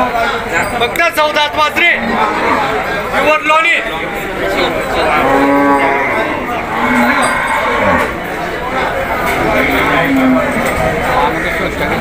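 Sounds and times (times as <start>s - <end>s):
cow mooing: 2.0s - 2.9s, 5.0s - 8.4s, 9.4s - 10.8s.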